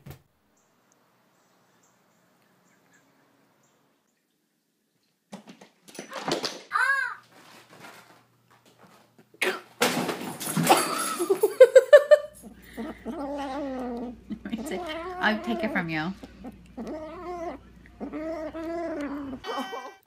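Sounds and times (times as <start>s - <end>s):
people laughing: 10.8s - 12.4s
cat vocalising: 12.7s - 20.0s.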